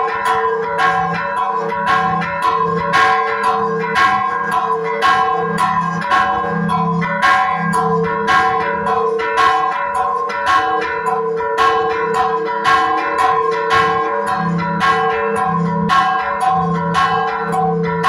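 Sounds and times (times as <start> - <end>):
church bells ringing rapidly: 0.0 - 18.0.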